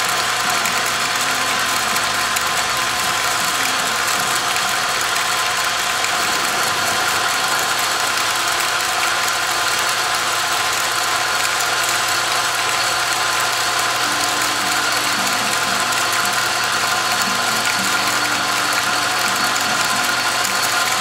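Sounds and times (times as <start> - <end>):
metal lathe motor whirring: 0.0 - 21.0.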